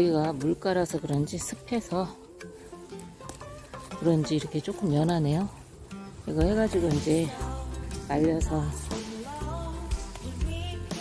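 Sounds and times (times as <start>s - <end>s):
leaves rustling and snapping: 0.0s - 10.6s
soft background music: 0.0s - 11.0s.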